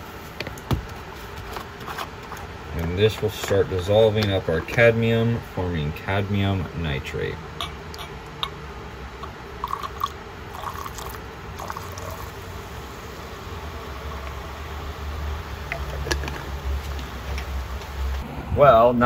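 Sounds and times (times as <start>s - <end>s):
low hum: 2.6s - 19.0s
acid fizzing: 9.2s - 18.2s.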